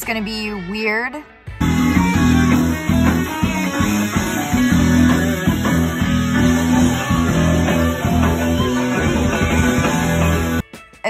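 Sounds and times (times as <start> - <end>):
drums: 0.0 - 11.0
keyboard: 0.0 - 11.0
bass guitar: 1.5 - 10.6
electric guitars: 1.6 - 10.6.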